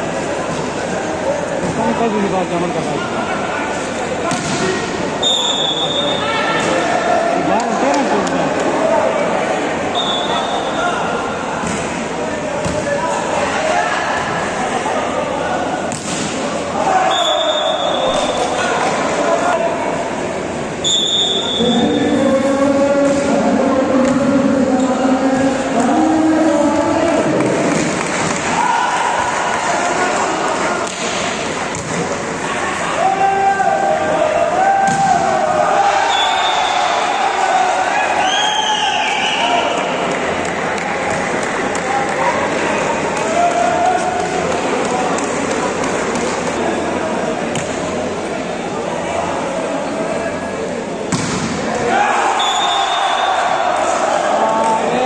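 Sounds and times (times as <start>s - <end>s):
crowd shouting and chanting: 0.0s - 55.0s
volleyball being struck: 51.1s - 51.6s.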